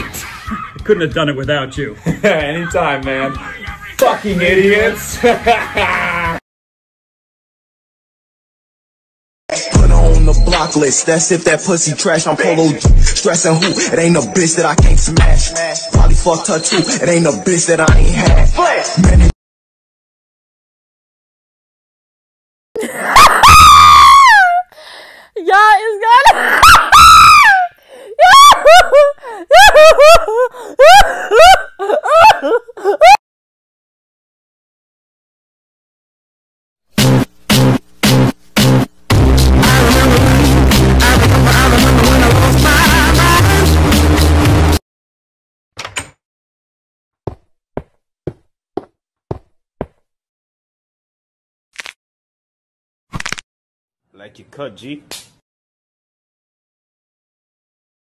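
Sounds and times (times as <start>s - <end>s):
music: 0.0s - 6.4s, 9.5s - 19.3s, 36.9s - 44.8s
person screaming high-pitched: 22.8s - 24.7s, 25.4s - 29.0s.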